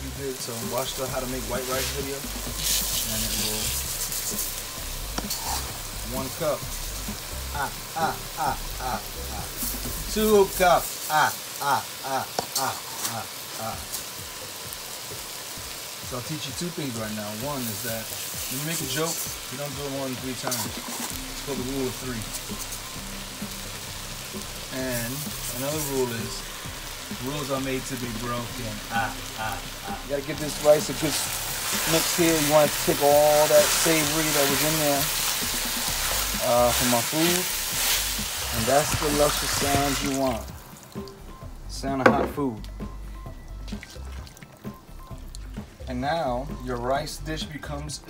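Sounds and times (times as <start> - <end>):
background music: 0.0 - 48.0
food sizzling in a pot: 0.0 - 48.0
spatula stirring in a pot: 20.4 - 21.6, 30.4 - 40.1
liquid sloshing and simmering: 43.6 - 45.8.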